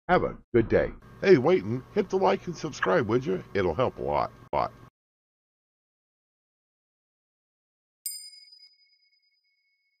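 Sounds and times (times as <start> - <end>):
bell ding: 8.1 - 10.0.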